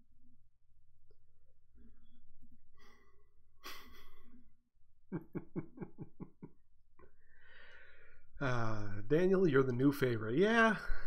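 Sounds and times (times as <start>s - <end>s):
man laughing: 3.6s - 4.4s, 5.1s - 6.6s
breathy gasp: 7.2s - 8.2s.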